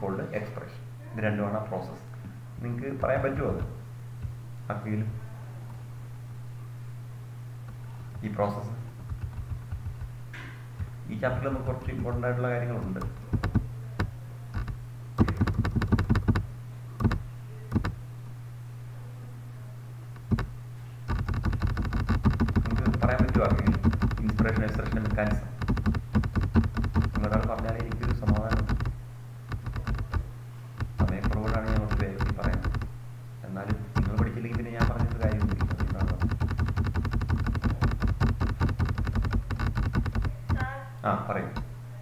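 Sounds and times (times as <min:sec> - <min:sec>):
steady low hum: 0:00.0 - 0:42.0
rapid clicking and rustling: 0:02.9 - 0:04.4, 0:07.6 - 0:18.0, 0:20.1 - 0:40.8.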